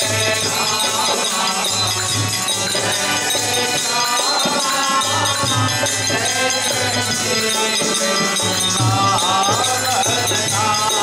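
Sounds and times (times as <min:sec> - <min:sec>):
clinking metal hand percussion: 0:00.0 - 0:11.0
harmonium chords and melody: 0:00.0 - 0:11.0.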